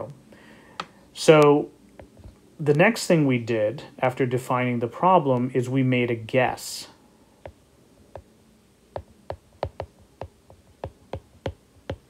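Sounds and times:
stylus tapping on glass screen: 9.0s - 12.0s.

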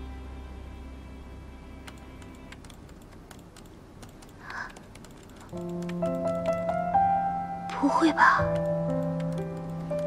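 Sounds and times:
soft music with sustained notes: 0.0s - 3.5s, 5.5s - 10.0s
typing on computer keyboard: 1.9s - 6.8s, 8.4s - 10.0s.

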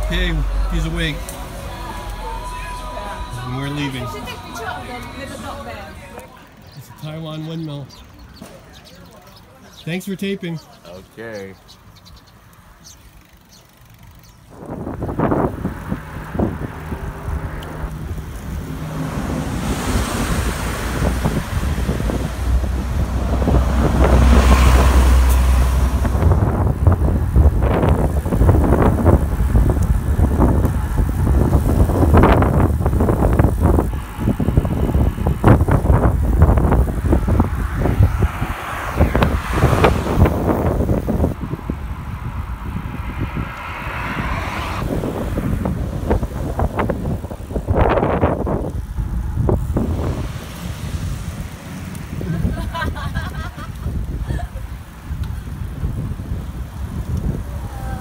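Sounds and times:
wind buffeting microphone: 12.8s - 58.0s.

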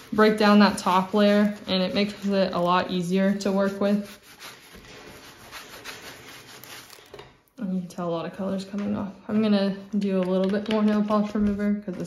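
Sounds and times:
cloth rag rubbing on glass: 0.0s - 7.1s.

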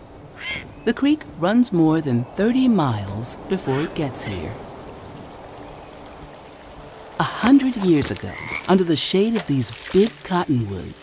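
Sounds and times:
creek water running: 1.8s - 11.0s.

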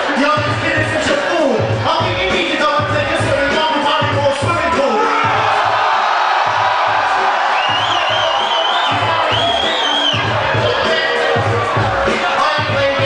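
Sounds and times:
crowd cheering and shouting: 0.0s - 13.0s
hip hop beat: 0.0s - 13.0s.

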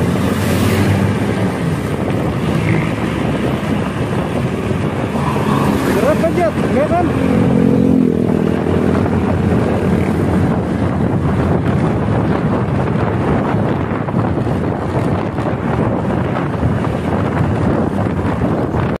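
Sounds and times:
vehicle road noise: 0.0s - 19.0s
wind rushing over microphone: 0.0s - 19.0s.

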